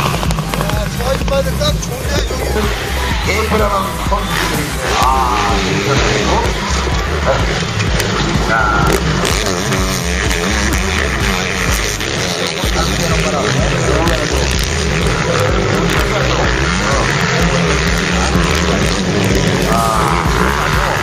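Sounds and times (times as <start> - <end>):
dirt bike engines revving: 0.0 - 21.0
indistinct voices: 0.0 - 21.0
music: 0.0 - 21.0.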